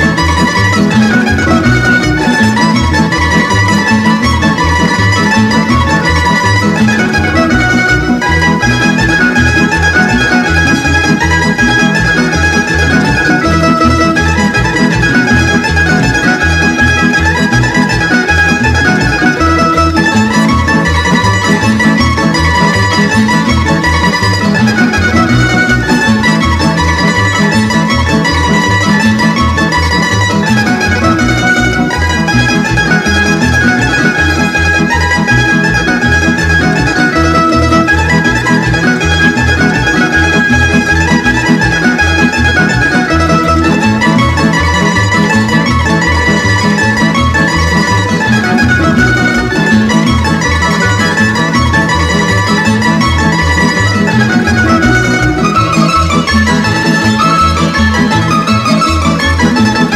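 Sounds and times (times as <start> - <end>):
plucked string instruments: 0.0 - 59.9
violin melody: 0.0 - 59.9.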